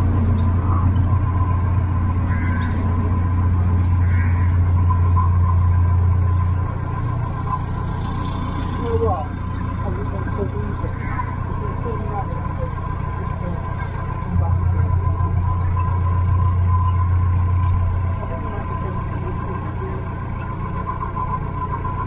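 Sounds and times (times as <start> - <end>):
boat engine droning: 0.0 - 22.0.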